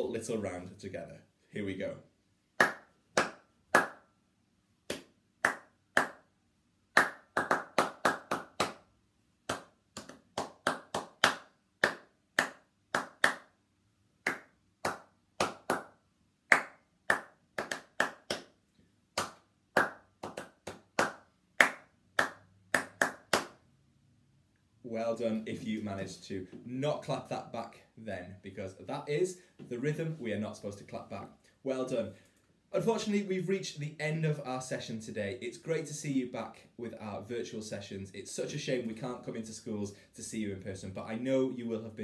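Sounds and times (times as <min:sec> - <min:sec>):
hands clapping rhythms: 0:02.6 - 0:04.1, 0:04.9 - 0:06.3, 0:06.9 - 0:13.6, 0:14.2 - 0:18.6, 0:19.2 - 0:23.6.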